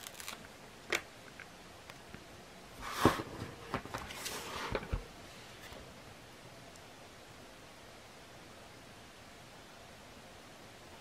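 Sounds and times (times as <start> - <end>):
pages sliding across desk: 2.8 - 5.8.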